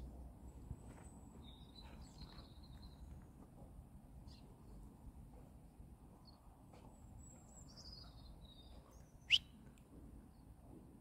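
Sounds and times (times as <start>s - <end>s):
bird chirps: 7.3s - 9.6s.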